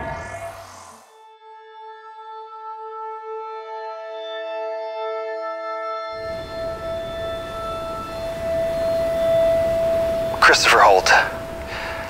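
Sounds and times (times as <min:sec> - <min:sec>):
high sustained drone note: 0:06.2 - 0:12.0.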